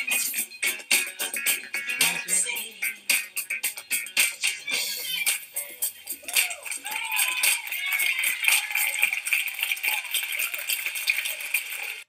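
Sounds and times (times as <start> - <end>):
audience applauding and cheering: 5.2 - 12.0
high whoops: 6.2 - 10.9.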